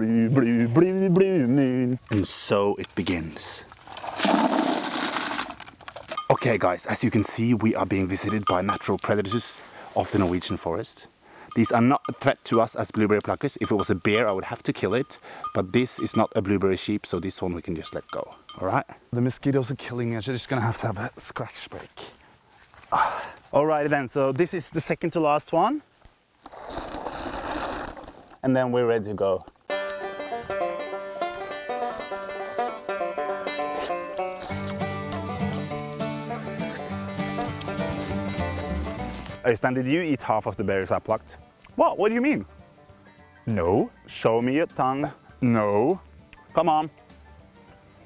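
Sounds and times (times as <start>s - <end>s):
berries pouring into plastic bag: 3.8s - 5.8s, 26.5s - 28.4s.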